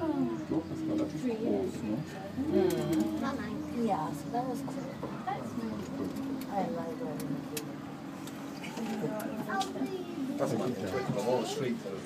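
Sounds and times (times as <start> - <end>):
cable car cabin hum: 0.0 - 11.5
faint voices talking: 0.0 - 12.0.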